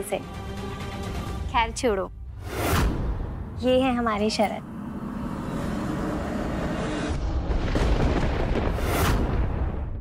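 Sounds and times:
rushing sound effect swell: 0:02.4 - 0:08.0.

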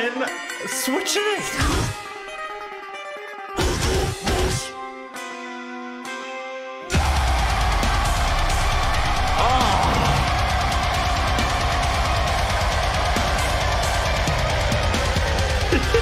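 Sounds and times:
heavy metal song: 0:03.6 - 0:04.8, 0:06.9 - 0:16.0.

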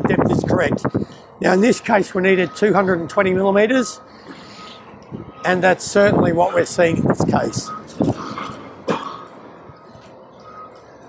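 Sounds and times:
work yard background hum: 0:00.0 - 0:11.0
faint high beep: 0:09.8 - 0:10.9.

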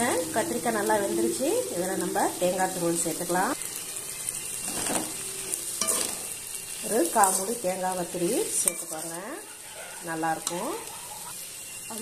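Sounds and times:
vegetables sizzling in a pan: 0:00.0 - 0:12.0
metal spatula scraping a pan: 0:04.4 - 0:11.8.

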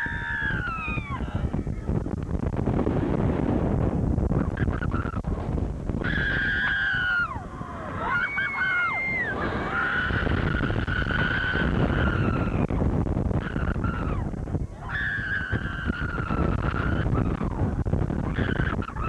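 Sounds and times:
people screaming: 0:00.0 - 0:02.0, 0:06.0 - 0:12.8, 0:13.4 - 0:19.0
wind rumble on microphone: 0:00.0 - 0:19.0.

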